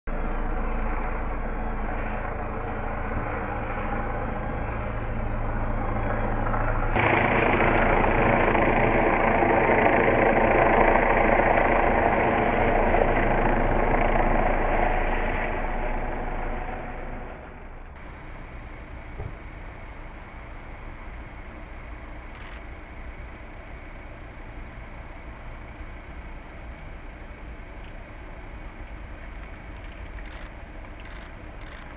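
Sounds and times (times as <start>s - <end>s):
vehicle engine droning: 0.1s - 31.9s.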